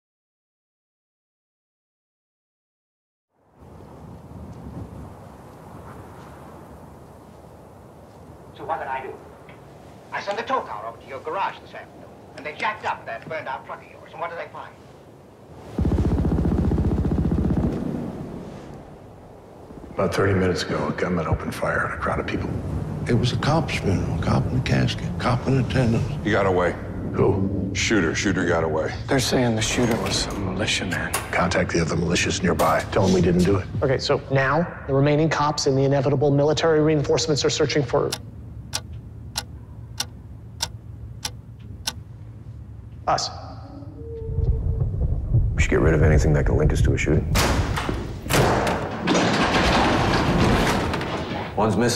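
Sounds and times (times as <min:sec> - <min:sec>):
low rapidly pulsing rumble: 0:15.6 - 0:29.2, 0:44.1 - 0:47.3
low steady drone: 0:15.8 - 0:33.6
sharp clock-like ticks: 0:38.1 - 0:42.0.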